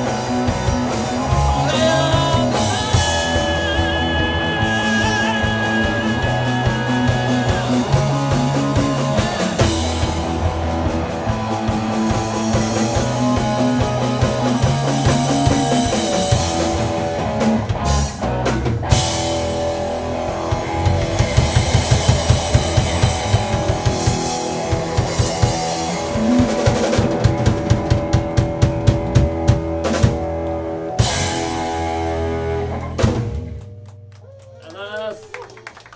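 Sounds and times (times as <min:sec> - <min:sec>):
rock band playing: 0:00.0 - 0:35.6.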